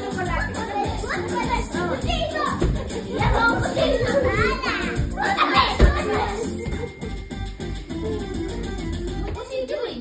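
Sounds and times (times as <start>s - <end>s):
children shouting and squealing: 0.0s - 6.7s
music: 0.0s - 10.0s.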